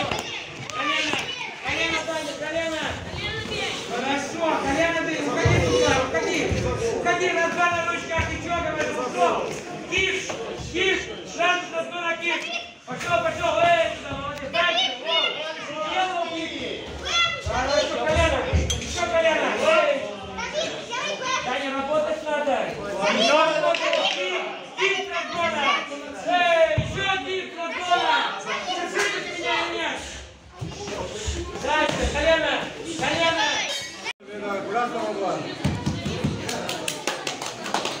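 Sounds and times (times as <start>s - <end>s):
audience hand clapping: 36.2s - 38.0s.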